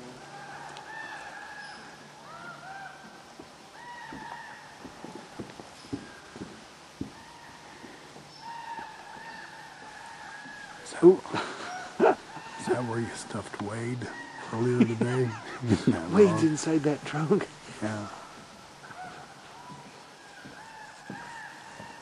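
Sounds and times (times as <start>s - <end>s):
faint rising and falling calls: 0.0s - 22.0s.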